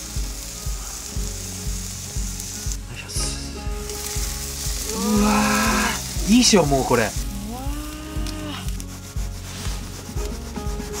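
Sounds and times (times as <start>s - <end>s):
knife sawing through steak: 7.2s - 11.0s.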